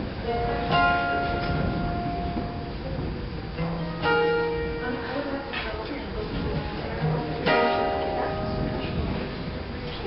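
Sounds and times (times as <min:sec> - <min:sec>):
acoustic guitar chord strummed: 0:03.6 - 0:05.7, 0:06.6 - 0:09.6.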